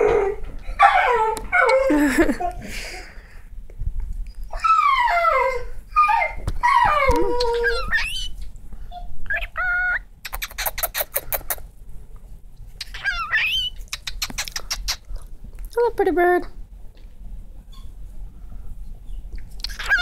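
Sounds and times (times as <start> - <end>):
cockatiel warbling and whistling: 7.3 - 8.4, 9.3 - 11.1, 12.8 - 15.0, 19.7 - 20.0
bird clicks: 10.2 - 11.6, 13.9 - 15.0.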